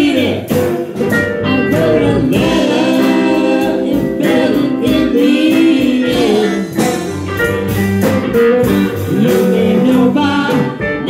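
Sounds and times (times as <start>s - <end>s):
blues-rock band playing: 0.0s - 11.0s.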